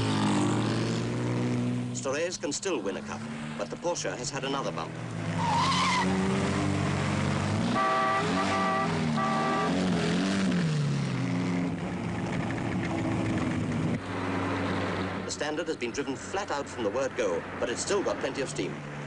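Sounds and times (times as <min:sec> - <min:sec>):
car engine running hard: 0:00.0 - 0:15.6
tyre squeal: 0:05.4 - 0:06.3
car horn toots: 0:07.6 - 0:09.9.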